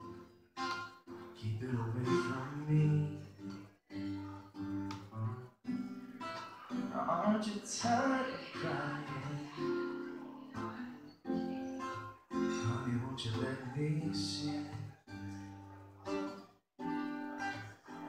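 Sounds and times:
acoustic guitar strumming: 0.0 - 18.0
person singing: 1.4 - 5.4, 6.2 - 16.4.

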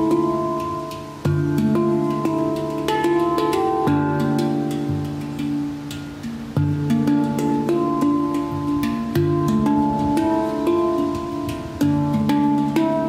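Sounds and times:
deep low handpan note: 0.0 - 13.0
handpan melody: 0.0 - 13.0.

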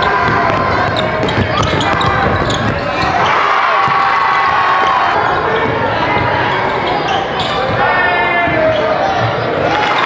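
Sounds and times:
basketball bouncing on gym floor: 0.0 - 4.2
crowd voices: 0.0 - 10.0
shoe squeals: 0.0 - 10.0.

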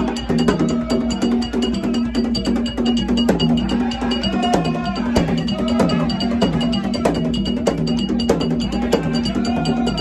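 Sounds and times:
ceremonial drums: 0.0 - 10.0
metal bell strikes: 0.0 - 10.0.

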